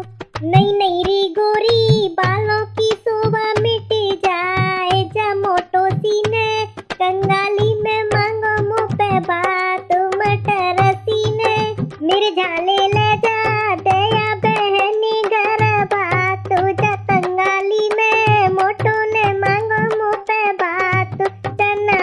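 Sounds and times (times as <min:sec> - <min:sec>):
drum beats: 0:00.0 - 0:22.0
woman singing folk song: 0:00.0 - 0:22.0.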